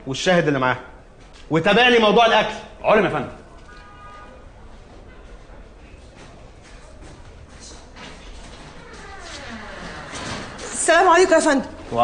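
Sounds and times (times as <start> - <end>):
wooden door creaking: 8.0 - 12.0.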